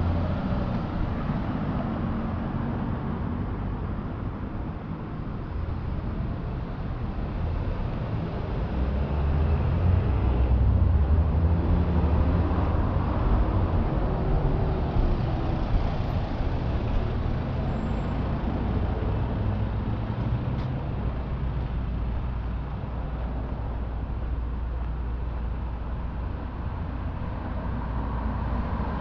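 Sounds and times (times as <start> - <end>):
road traffic rumble: 0.0 - 29.0.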